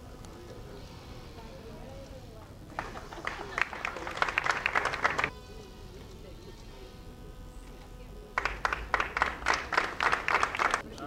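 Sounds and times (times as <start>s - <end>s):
faint murmured voices: 0.0s - 11.0s.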